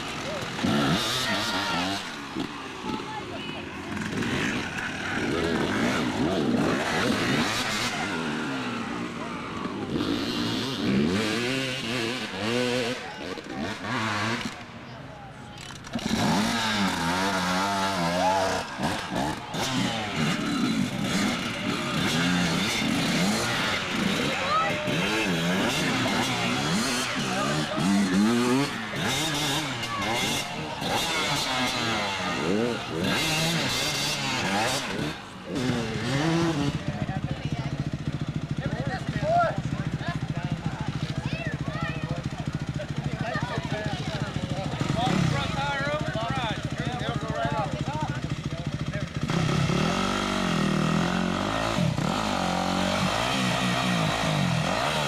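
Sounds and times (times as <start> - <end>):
dirt bike engines revving: 0.0 - 55.0.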